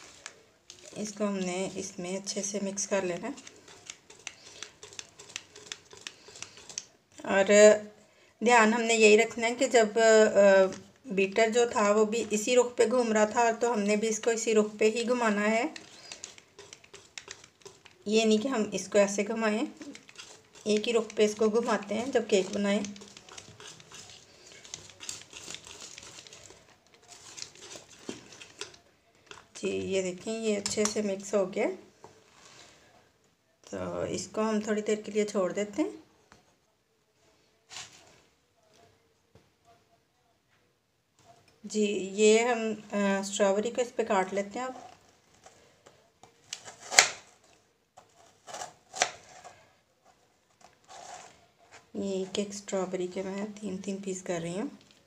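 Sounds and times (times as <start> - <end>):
whisk stirring batter in bowl: 0.0 - 7.2, 10.6 - 30.2.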